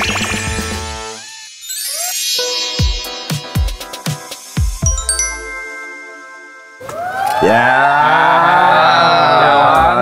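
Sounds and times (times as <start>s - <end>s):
bright chime ringing: 4.8s - 7.3s.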